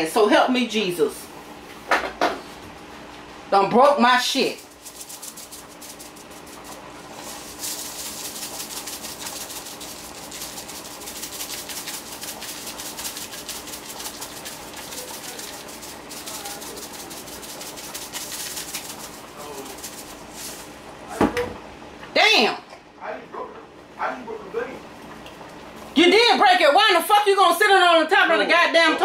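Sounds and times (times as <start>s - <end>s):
seasoning shaker rattling: 4.2s - 20.8s.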